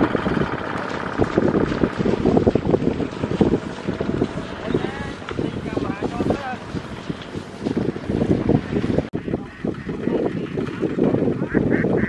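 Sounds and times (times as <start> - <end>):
diesel engine chugging: 0.0 - 12.0
wind on microphone: 0.0 - 12.0
voices: 4.0 - 7.3.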